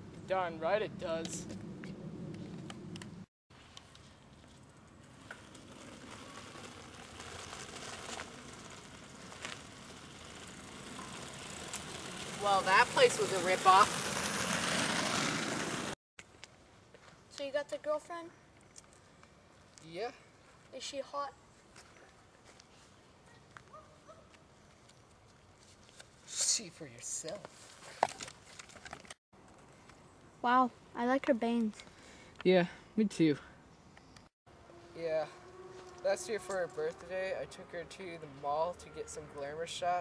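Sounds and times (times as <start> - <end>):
wheels rolling on asphalt: 0.1 - 16.0, 27.0 - 30.1, 34.5 - 40.0.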